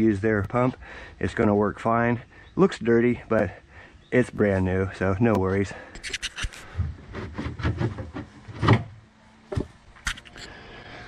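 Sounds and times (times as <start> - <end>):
rubbing and scraping on plastic: 6.0 - 9.0.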